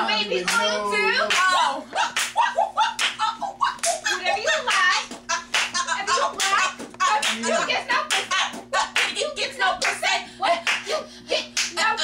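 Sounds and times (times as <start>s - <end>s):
hands clapping: 1.3s - 3.2s, 3.8s - 4.0s, 4.6s - 7.4s, 8.1s - 8.4s, 9.0s - 9.2s, 9.8s - 10.0s, 10.6s - 10.8s, 11.6s - 11.8s.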